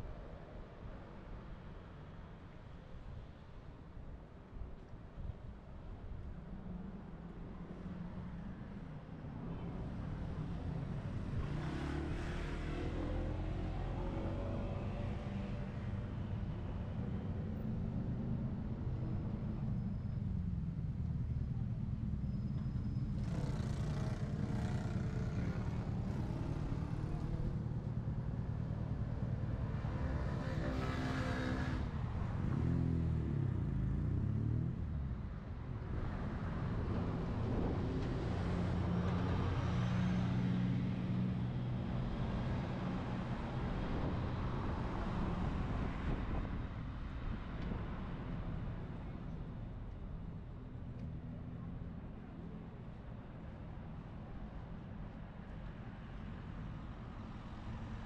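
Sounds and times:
cars passing: 23.0s - 50.3s.

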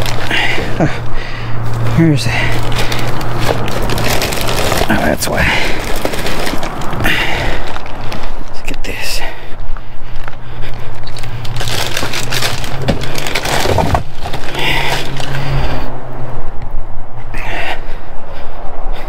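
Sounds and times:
plastic bags rustling: 0.0s - 8.6s, 10.1s - 15.9s
low hum: 0.0s - 19.0s.

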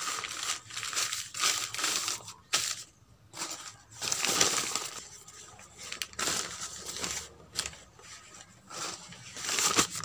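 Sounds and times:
newspaper rustling and crinkling: 0.0s - 10.0s.

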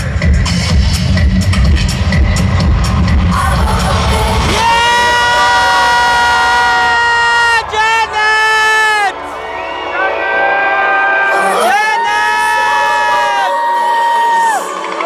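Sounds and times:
electronic dance music with heavy bass: 0.0s - 15.0s.

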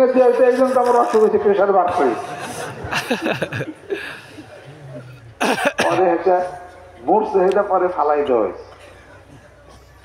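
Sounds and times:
man coughing: 5.4s - 6.1s.

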